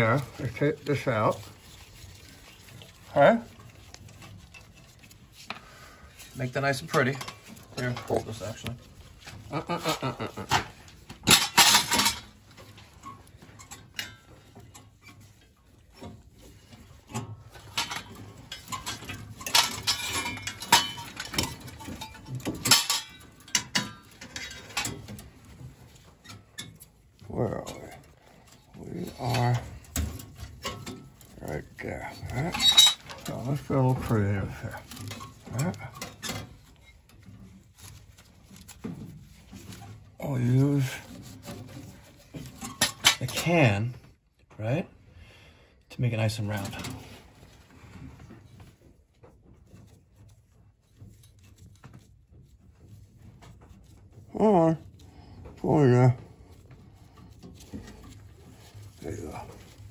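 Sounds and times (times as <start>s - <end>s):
metallic clicks and rattles: 6.2s - 44.2s.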